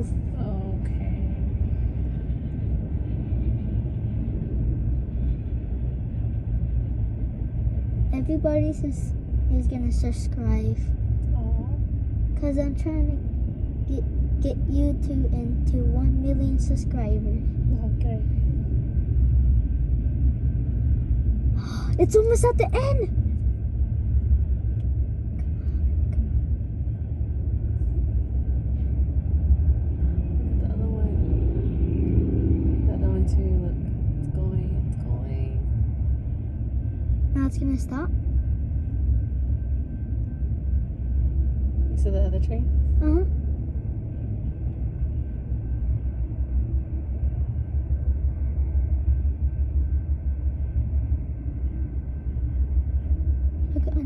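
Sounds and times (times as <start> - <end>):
freight train rumbling: 0.0 - 54.0.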